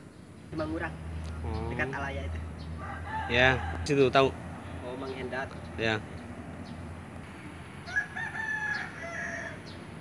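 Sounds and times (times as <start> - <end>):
rooster crowing: 2.6 - 4.4, 7.8 - 10.0.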